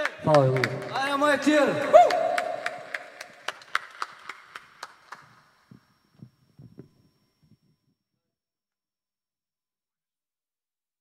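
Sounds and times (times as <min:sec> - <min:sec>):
people clapping: 0:00.0 - 0:05.7.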